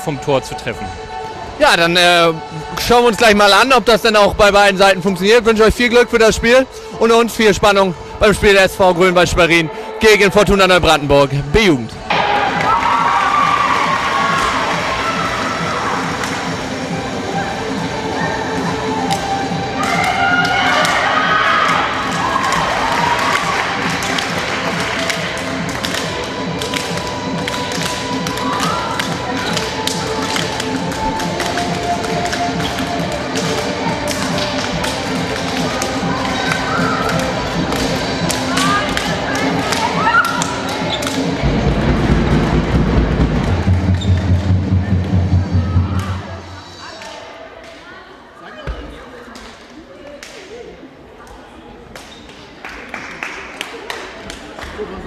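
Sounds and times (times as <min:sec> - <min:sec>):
music playing: 0:00.0 - 0:47.1
girls shouting and cheering: 0:12.1 - 0:16.2, 0:19.7 - 0:24.0, 0:38.4 - 0:40.7.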